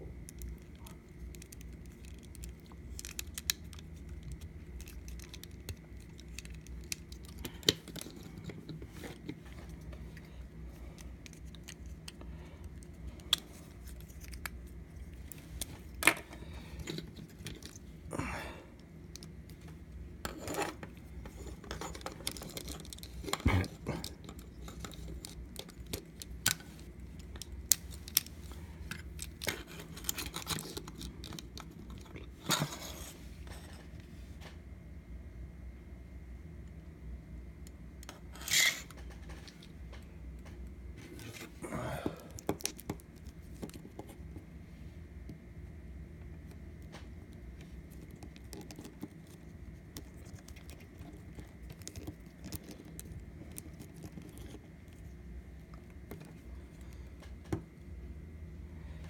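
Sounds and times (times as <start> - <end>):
steady low hum: 0.0 - 59.0
plastic parts clicking and snapping: 0.2 - 10.3, 20.6 - 32.8.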